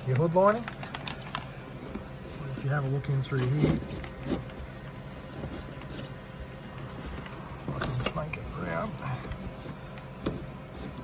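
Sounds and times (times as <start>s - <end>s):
cable rustling and scraping: 0.0s - 11.0s.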